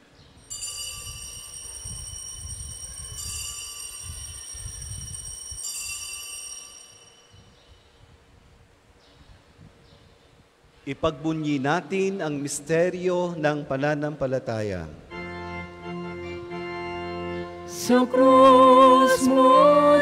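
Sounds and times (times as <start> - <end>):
small bells ringing: 0.4 - 7.6.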